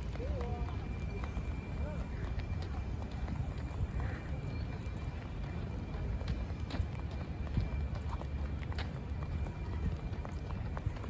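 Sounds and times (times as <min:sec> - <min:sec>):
footsteps on rubber track: 0:00.0 - 0:11.0.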